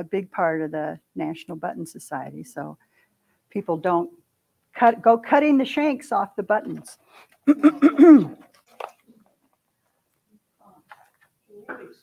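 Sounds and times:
woman clearing her throat: 7.5 - 8.4, 11.6 - 12.0.

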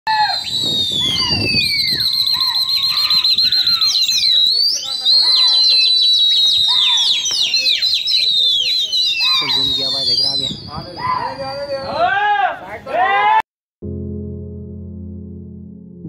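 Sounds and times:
shrill whistling: 0.1 - 12.1
people shouting: 2.2 - 9.7, 10.9 - 13.4.

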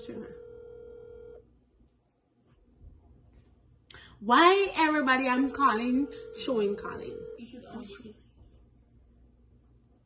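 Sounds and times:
phone ringback tone: 0.0 - 1.4, 5.7 - 7.5.

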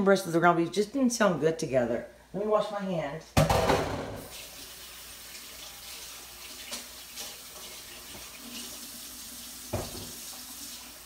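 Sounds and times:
faucet water running: 4.1 - 11.0.

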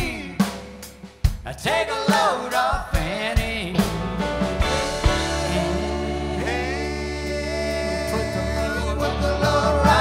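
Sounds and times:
person singing: 0.0 - 0.6, 4.6 - 10.0
drum hits: 0.0 - 7.1
country-rock band playing: 0.0 - 10.0.

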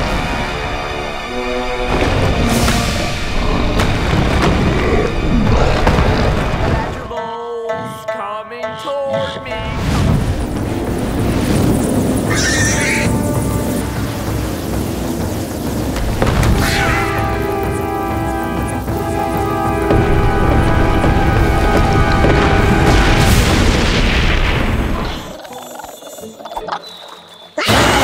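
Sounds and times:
shrill wavering screech: 12.3 - 13.2.

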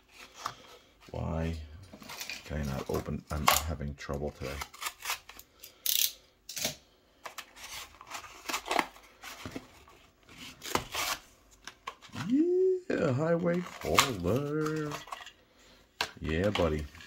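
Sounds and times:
cardboard tearing: 4.4 - 5.4, 10.3 - 11.3.

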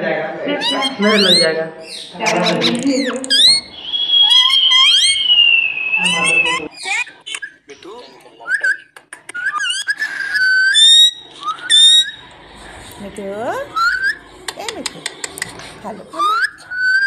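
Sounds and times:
parakeet whistling and chirping: 0.6 - 12.3, 13.7 - 14.3, 16.1 - 17.0.

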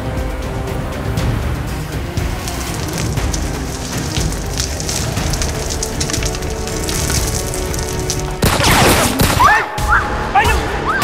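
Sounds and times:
tense dramatic music: 0.0 - 11.0.

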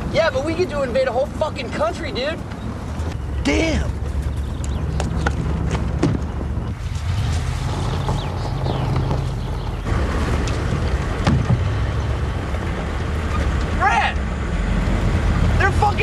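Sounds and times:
road rumble: 0.0 - 16.0
vehicle engine droning: 0.0 - 16.0
knocks: 11.2 - 11.7.

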